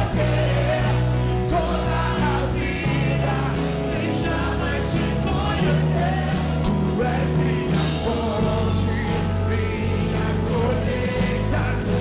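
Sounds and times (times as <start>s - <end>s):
instrumental accompaniment: 0.0s - 12.0s
man singing into microphone: 0.0s - 12.0s.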